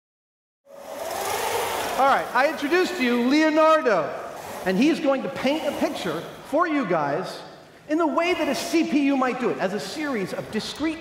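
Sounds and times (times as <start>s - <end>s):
steady background noise: 0.7s - 11.0s
person speaking: 2.0s - 11.0s.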